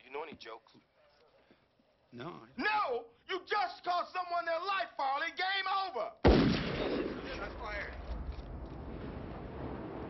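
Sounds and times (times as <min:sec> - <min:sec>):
gunshot with echoing tail: 0:06.3 - 0:09.8.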